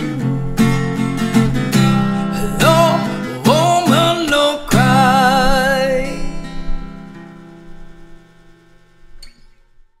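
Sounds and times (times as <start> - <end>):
acoustic guitar chord ringing: 0.0 - 9.6.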